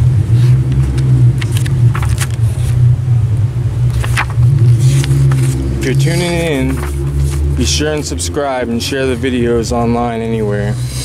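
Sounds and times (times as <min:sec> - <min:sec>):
low mechanical rumble: 0:00.0 - 0:11.0
sketchbook pages turning: 0:00.4 - 0:02.8, 0:03.9 - 0:08.1.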